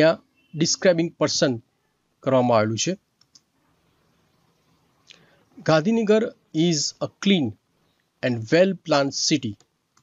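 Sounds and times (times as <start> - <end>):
man speaking: 0.0 - 1.6, 2.2 - 3.0, 5.6 - 7.6, 8.2 - 9.6
faint mouse clicks: 3.2 - 3.5, 9.5 - 10.0.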